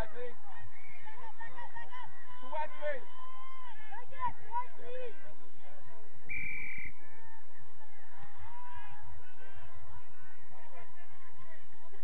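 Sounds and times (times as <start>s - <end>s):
referee's whistle blast: 6.3s - 7.0s.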